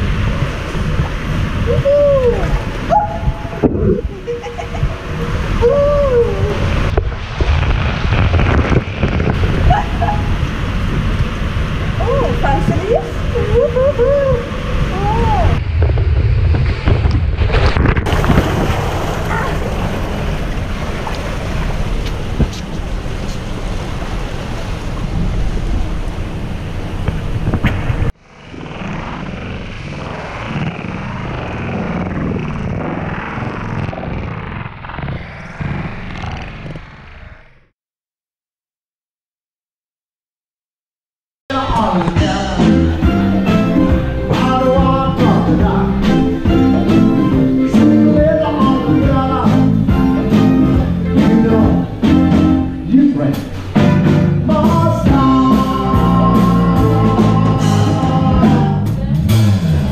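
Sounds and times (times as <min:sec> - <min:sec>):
water and wind rumble on microphone: 0:00.0 - 0:37.5, 0:41.5 - 0:59.9
person whooping: 0:01.7 - 0:04.3, 0:05.5 - 0:06.8, 0:13.0 - 0:15.6.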